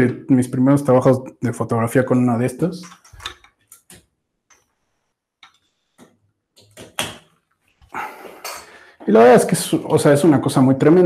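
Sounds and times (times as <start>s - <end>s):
lamps clicking and knocking: 6.6s - 7.4s.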